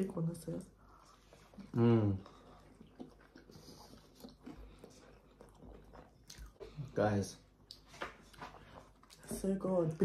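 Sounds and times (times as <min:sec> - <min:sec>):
faint chewing: 0:00.4 - 0:10.0.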